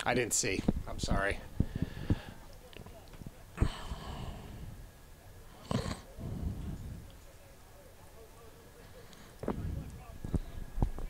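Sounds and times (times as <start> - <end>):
low rumbling on microphone: 6.1 - 7.3, 9.4 - 11.0.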